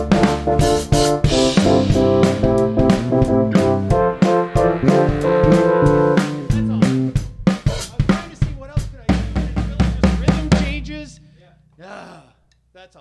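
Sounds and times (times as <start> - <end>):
keyboard: 0.0 - 8.2
drum kit: 0.0 - 11.7.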